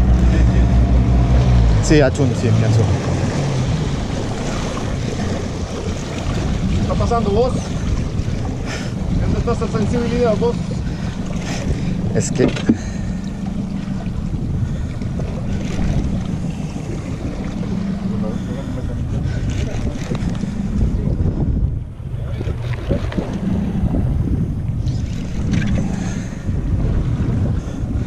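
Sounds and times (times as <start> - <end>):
outboard engine drone: 0.0 - 28.0
wind buffeting microphone: 0.0 - 28.0.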